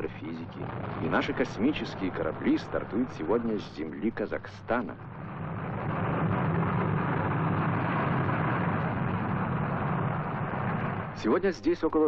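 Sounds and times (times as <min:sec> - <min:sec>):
rocket engine rumble: 0:00.0 - 0:12.0.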